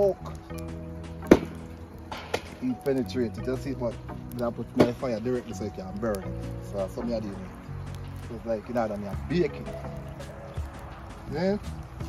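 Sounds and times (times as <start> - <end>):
sweet potatoes knocking on logs: 1.2 - 7.4.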